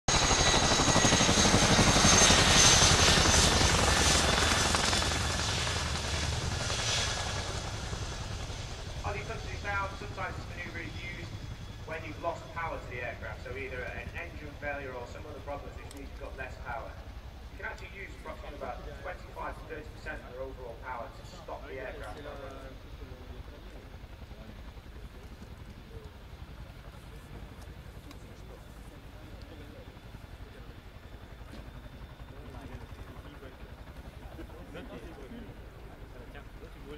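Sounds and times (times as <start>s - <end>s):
helicopter rotor chop: 0.1s - 36.9s
high turbine engine whine: 0.1s - 36.9s.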